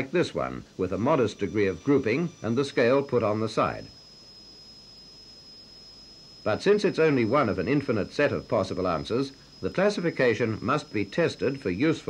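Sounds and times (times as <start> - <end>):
film soundtrack hiss: 0.0 - 12.0
high-pitched whine: 0.0 - 12.0.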